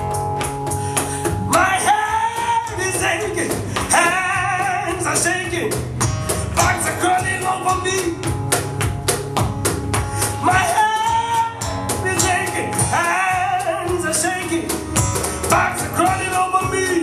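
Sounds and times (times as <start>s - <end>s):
acoustic guitar strummed: 0.0s - 17.0s
cajon beats: 0.0s - 17.0s
man singing: 1.0s - 8.4s, 10.2s - 17.0s.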